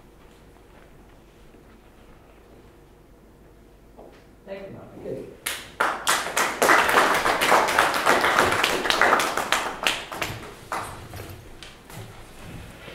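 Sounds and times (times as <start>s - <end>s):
audience applauding: 5.5s - 11.1s.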